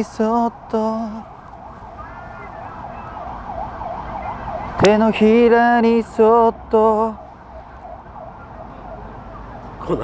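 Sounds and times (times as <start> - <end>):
low street traffic rumble: 0.0 - 10.0
siren in yelp mode: 0.0 - 10.0.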